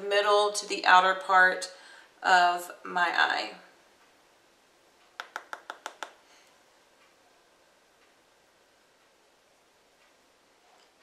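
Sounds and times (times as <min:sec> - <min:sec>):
brush tapping on palette: 0:05.2 - 0:06.1.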